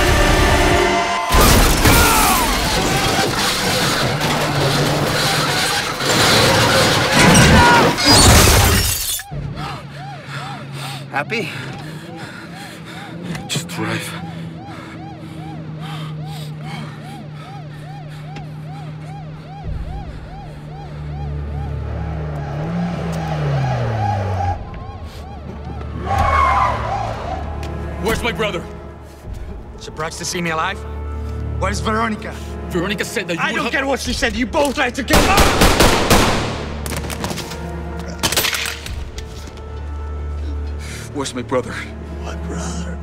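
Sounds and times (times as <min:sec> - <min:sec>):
car engine drone: 0:00.0 - 0:29.9
pulsing film score: 0:00.0 - 0:43.0
siren yelping: 0:00.4 - 0:28.5
glass shattering: 0:01.4 - 0:09.2
car engine revving: 0:20.9 - 0:28.4
tyres skidding on pavement: 0:22.0 - 0:28.4.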